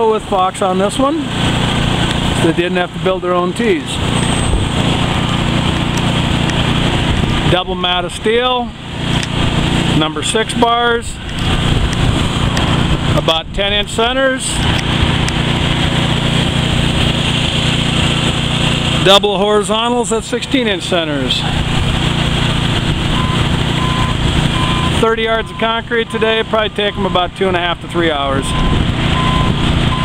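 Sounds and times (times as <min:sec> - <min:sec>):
heavy machinery engine running: 0:00.0 - 0:30.0
reversing alarm beeps: 0:23.2 - 0:27.2, 0:28.4 - 0:30.0.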